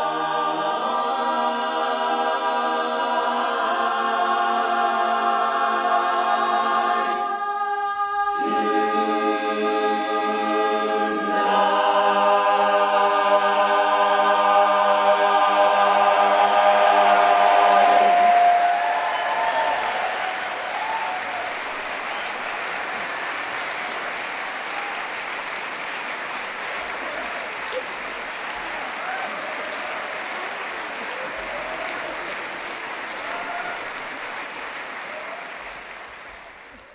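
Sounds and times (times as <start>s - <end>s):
barbershop chorus singing harmony: 0.0s - 21.5s
audience applauding: 14.3s - 36.9s
whoops and cheers: 16.5s - 25.2s, 28.6s - 32.4s, 33.1s - 34.1s, 35.0s - 35.8s.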